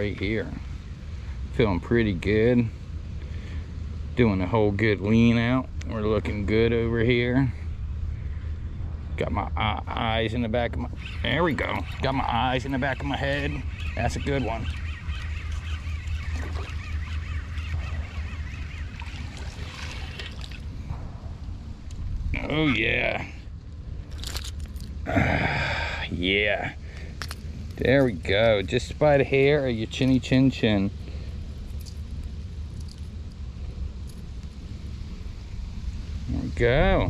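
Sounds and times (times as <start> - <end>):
wind rumble on microphone: 0.0 - 37.0
water splashing: 13.6 - 21.0.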